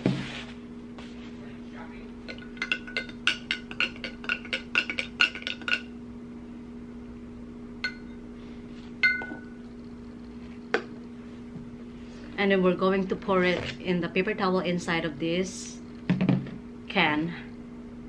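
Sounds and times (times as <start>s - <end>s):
spoon clinking against glass: 2.3s - 5.9s, 9.0s - 9.6s
single ringing clinks: 7.8s - 8.2s, 9.0s - 9.6s.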